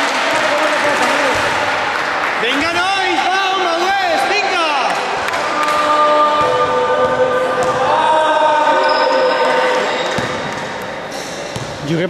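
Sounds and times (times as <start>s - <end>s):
spectators chanting: 5.1s - 10.8s
basketball bouncing on floor: 11.5s - 11.8s.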